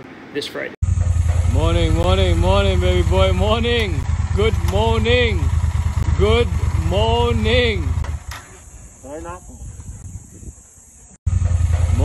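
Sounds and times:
motorcycle engine rumbling: 0:00.8 - 0:12.0.

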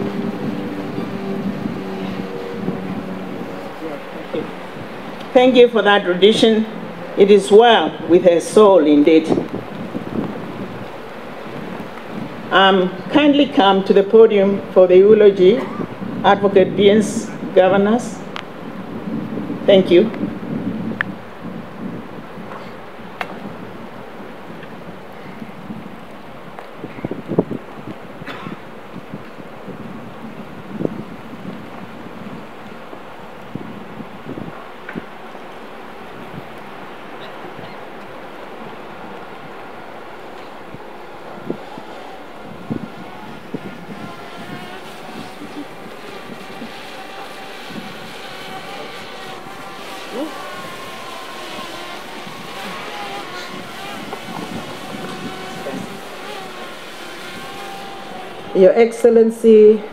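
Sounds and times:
wind noise on microphone: 0:00.0 - 0:59.9.

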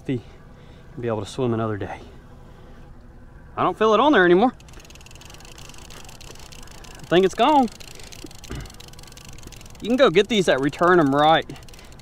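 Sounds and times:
wind: 0:00.0 - 0:12.0
fishing reel being cranked: 0:04.5 - 0:12.0
mechanical ticking of gears: 0:04.5 - 0:12.0.

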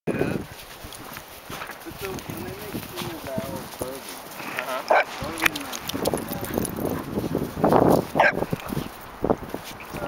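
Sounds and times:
dog paws crunching in snow: 0:00.2 - 0:10.0.

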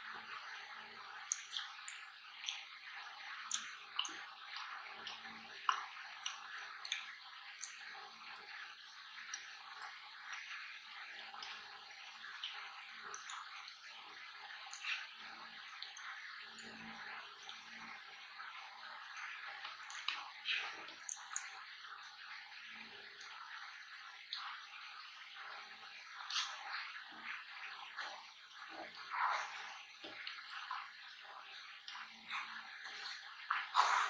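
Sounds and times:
small clicks and smacks: 0:01.2 - 0:02.8, 0:03.4 - 0:08.6, 0:12.4 - 0:13.9, 0:19.1 - 0:21.7
wet chewing and mouth sounds: 0:01.2 - 0:10.7, 0:11.4 - 0:13.8, 0:14.5 - 0:18.0, 0:18.9 - 0:21.7, 0:26.0 - 0:34.0.

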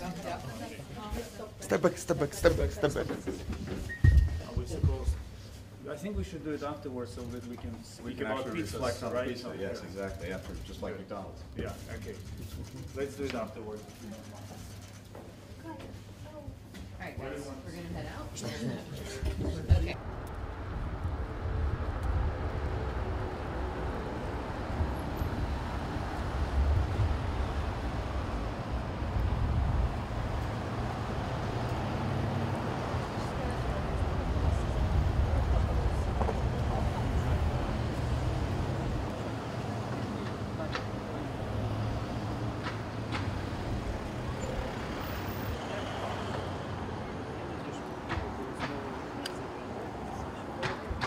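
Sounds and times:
engines and tyres rumbling: 0:19.5 - 0:51.0
cars driving past: 0:19.9 - 0:51.0.

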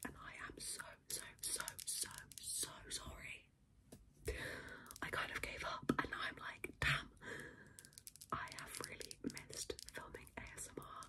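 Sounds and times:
woman whispering: 0:00.0 - 0:03.5, 0:04.9 - 0:07.2, 0:08.3 - 0:11.0.

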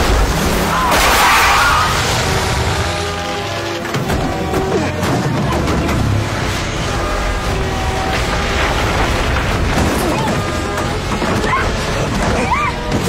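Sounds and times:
action film music score: 0:00.0 - 0:13.0
heavy booms and crashing: 0:00.0 - 0:13.0.

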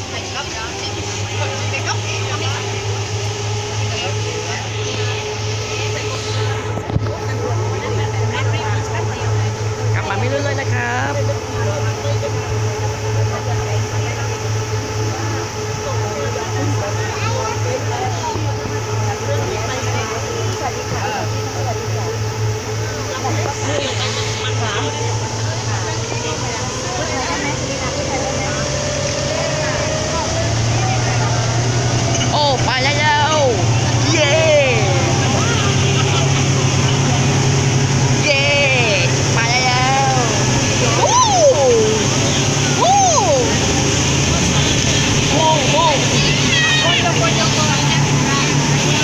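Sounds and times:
faint passenger voices: 0:00.0 - 0:49.0
speedboat engine drone: 0:00.0 - 0:49.0
water rushing past hull: 0:00.0 - 0:49.0.

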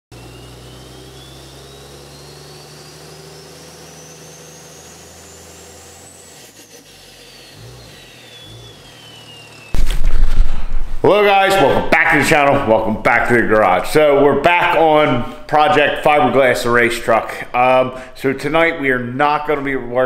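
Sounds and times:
high whistle rising and falling: 0:00.3 - 0:05.6, 0:08.0 - 0:11.1
microphone handling rumble: 0:09.8 - 0:11.1.

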